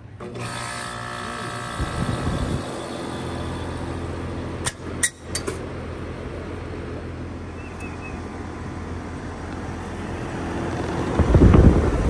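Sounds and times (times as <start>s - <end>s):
air conditioner unit humming: 0.0s - 12.0s
sharp click: 4.6s - 5.6s.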